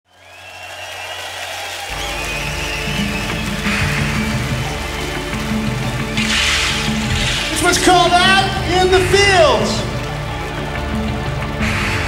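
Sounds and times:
rock band sustained chords: 1.9s - 12.0s.

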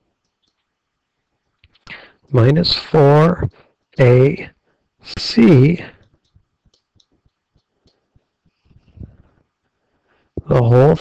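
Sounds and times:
man's voice: 2.4s - 4.5s, 5.1s - 6.0s, 10.4s - 11.0s.

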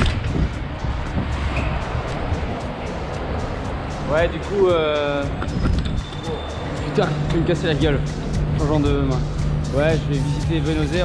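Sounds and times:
wind rumbling over microphone: 0.0s - 6.4s
music with steady beat: 0.0s - 11.0s.

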